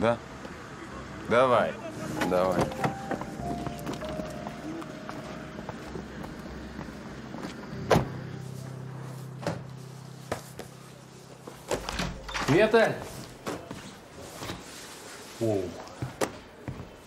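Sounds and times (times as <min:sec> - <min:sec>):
background music: 0:01.8 - 0:12.9
car doors shutting: 0:07.4 - 0:08.3.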